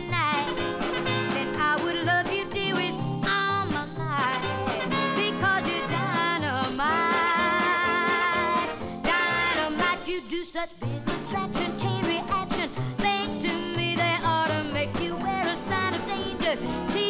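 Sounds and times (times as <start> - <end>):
band playing steady beat: 0.0 - 3.3, 4.2 - 10.0
girl singing: 0.0 - 17.0.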